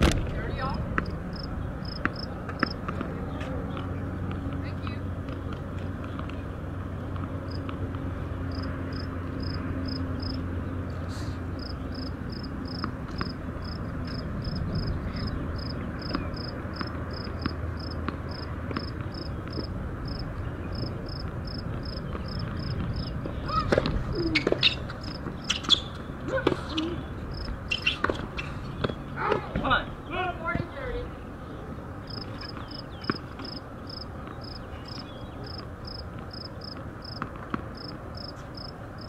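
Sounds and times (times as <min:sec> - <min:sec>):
low outdoor hum: 0:00.0 - 0:39.0
insect chirping: 0:01.3 - 0:02.3, 0:08.5 - 0:10.4, 0:11.6 - 0:12.8, 0:13.6 - 0:14.9, 0:15.6 - 0:16.5, 0:17.1 - 0:22.7, 0:27.3 - 0:27.5, 0:32.1 - 0:37.2, 0:37.8 - 0:38.7.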